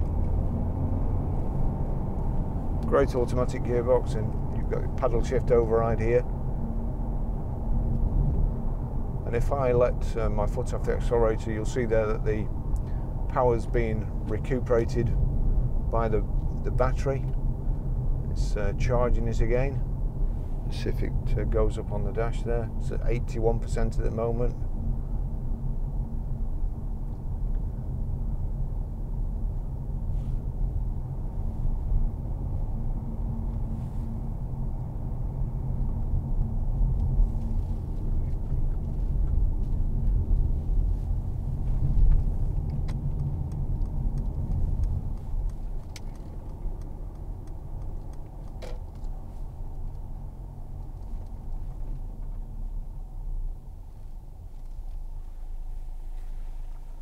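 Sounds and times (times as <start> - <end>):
car cabin road rumble: 0.0 - 57.0.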